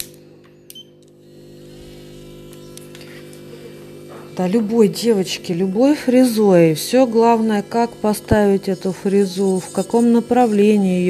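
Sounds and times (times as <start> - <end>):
electric nail drill humming: 0.0 - 11.0.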